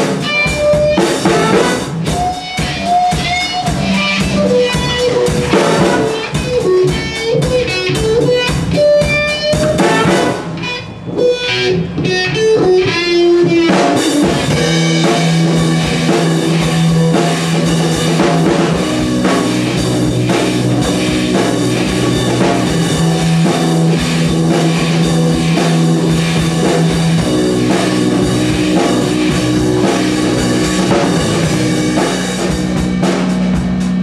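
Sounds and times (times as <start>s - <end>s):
drum kit: 0.0s - 34.0s
electric bass: 0.0s - 34.0s
electric guitar: 0.0s - 34.0s
saxophone: 0.3s - 10.7s
trumpet: 1.2s - 2.1s, 5.5s - 6.4s, 9.6s - 10.7s.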